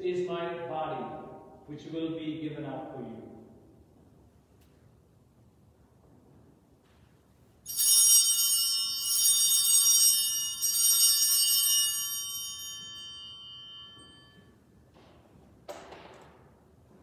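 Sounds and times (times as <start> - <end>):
altar bells jingling: 7.7 - 14.9.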